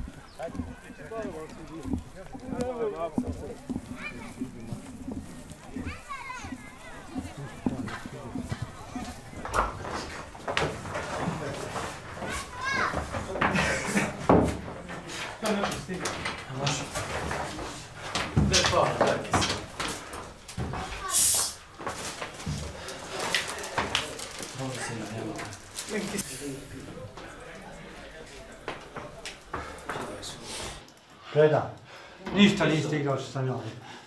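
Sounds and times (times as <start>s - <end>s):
footsteps and gear clatter: 0.0s - 31.2s
people chattering: 0.0s - 31.2s
short high hiss: 21.1s - 21.6s.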